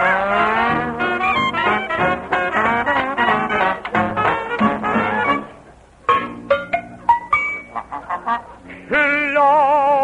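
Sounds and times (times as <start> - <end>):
novelty dance-band music: 0.0 - 10.0.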